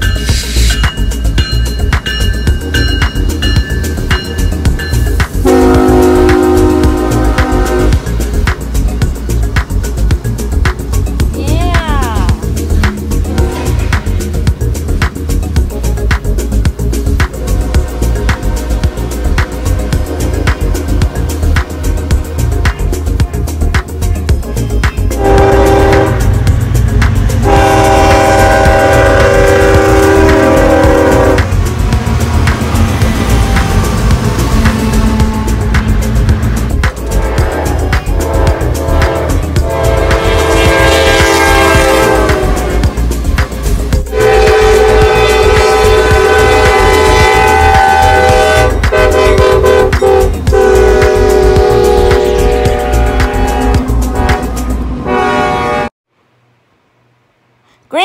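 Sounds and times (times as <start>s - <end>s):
rumble of passing trains: 0.0s - 58.0s
locomotive horns: 5.4s - 8.4s, 13.2s - 14.1s, 17.3s - 21.1s, 25.0s - 26.5s, 27.2s - 31.6s, 32.8s - 36.3s, 36.9s - 43.1s, 44.0s - 55.9s.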